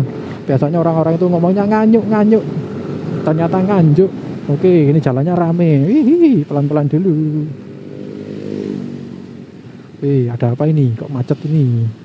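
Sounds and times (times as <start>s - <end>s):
motorcycle engine at low speed: 0.0s - 10.2s.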